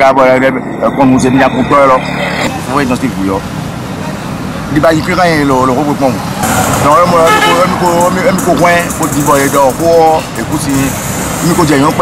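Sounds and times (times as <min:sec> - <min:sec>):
man talking: 0:00.0 - 0:03.5, 0:04.7 - 0:12.0
street traffic: 0:00.0 - 0:12.0
motorcycle engines running: 0:02.5 - 0:12.0.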